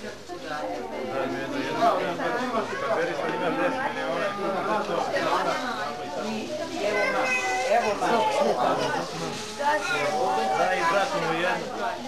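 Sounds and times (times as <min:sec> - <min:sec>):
chatter of children and adults: 0:00.0 - 0:12.0
child's high voice: 0:06.8 - 0:08.5, 0:09.6 - 0:10.6.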